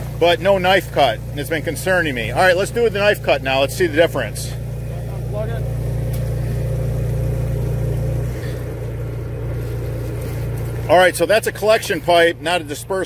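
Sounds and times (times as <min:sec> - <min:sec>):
pump motor drone: 0:00.0 - 0:13.0.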